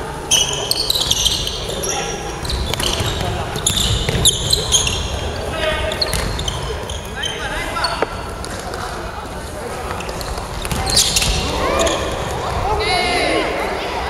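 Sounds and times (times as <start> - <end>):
sneakers squeaking on gym floor: 0.3 - 9.0, 9.7 - 12.6
basketball bouncing: 2.4 - 5.2, 6.0 - 6.8.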